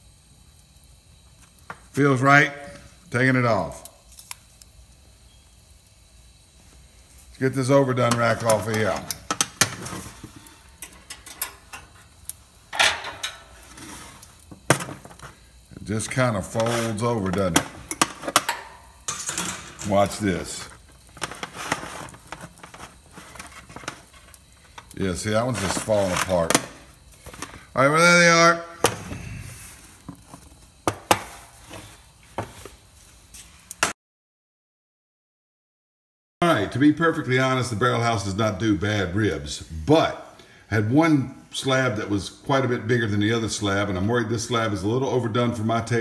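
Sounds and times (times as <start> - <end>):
metal scrape: 12.8 - 14.2, 16.5 - 17.1.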